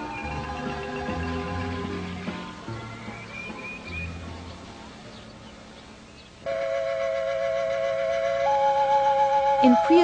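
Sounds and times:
flute-like woodwind notes held: 6.5 - 10.0.

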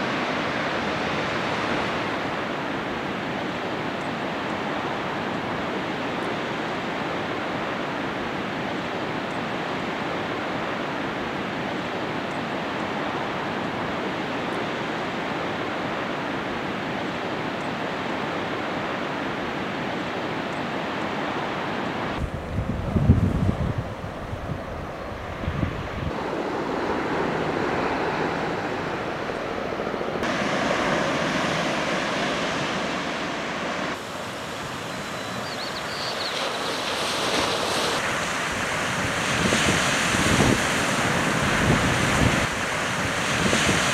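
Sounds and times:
ocean surf on rocky shore: 0.0 - 43.9
wind buffeting microphone: 22.1 - 32.8, 33.6 - 43.9.

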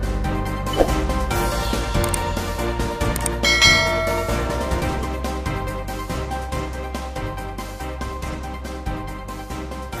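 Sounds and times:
background music: 0.0 - 10.0
bright bell chime: 3.4 - 5.2.

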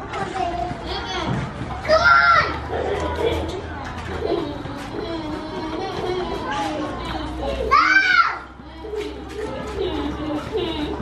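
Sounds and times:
children playing and chattering: 0.0 - 11.0.

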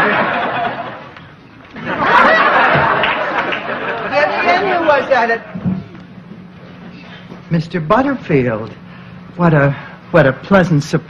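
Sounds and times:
audience laughing and murmuring: 0.0 - 6.2.

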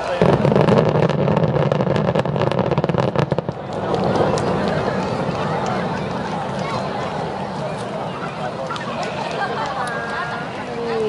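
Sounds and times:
distant fireworks booming: 0.0 - 11.0
fireworks crackling: 0.0 - 11.0.

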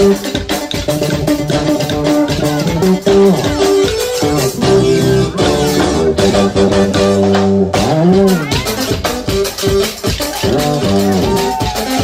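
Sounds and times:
bass guitar line: 0.0 - 12.0
electric guitar melody: 0.0 - 12.0.

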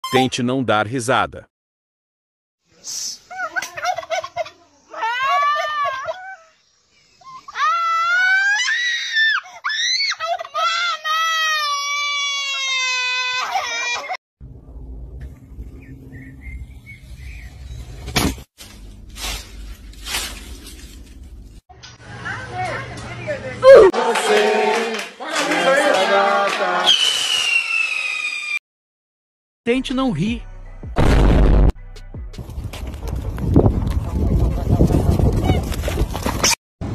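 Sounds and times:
boy screaming and wailing: 4.9 - 6.6, 7.4 - 14.2, 23.6 - 24.0
voices: 22.0 - 26.9
firework fountain hissing and whistling: 26.9 - 28.6.

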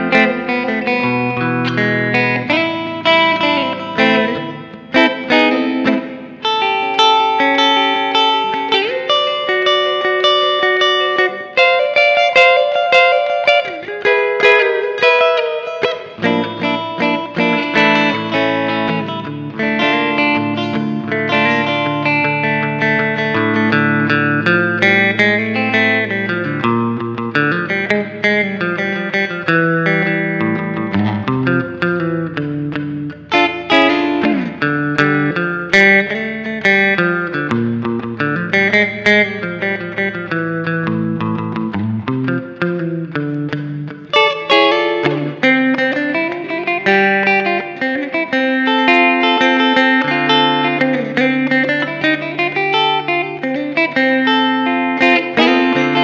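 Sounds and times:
electric guitar surf melody: 0.0 - 56.0.

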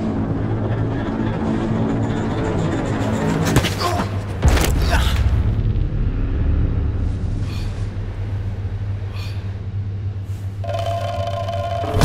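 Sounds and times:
low rumbling drone: 0.0 - 12.0
held tone: 10.6 - 12.0.

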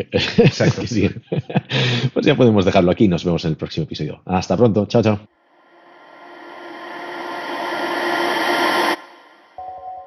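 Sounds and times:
rising whoosh: 5.4 - 9.7.

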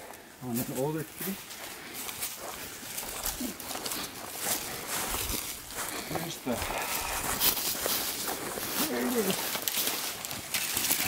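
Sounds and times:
footsteps on forest floor: 0.0 - 11.0
pine branches brushing clothing: 0.5 - 11.0.

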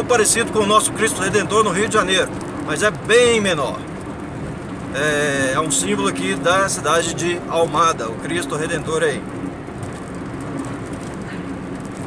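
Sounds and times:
car driving heard from inside: 0.0 - 12.0.

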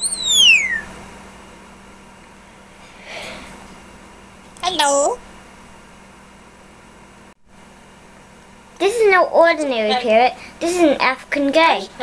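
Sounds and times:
parrot whistle gliding down: 0.0 - 1.0.

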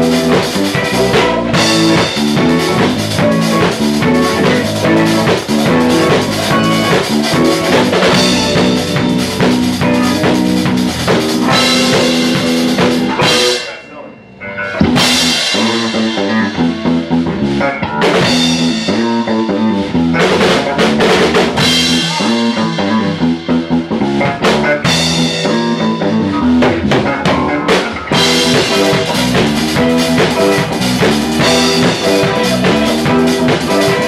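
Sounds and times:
rock band playing: 0.0 - 34.0.

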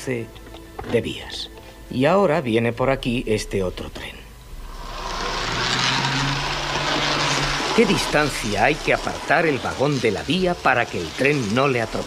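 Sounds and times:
toy electric train running: 4.8 - 8.8.

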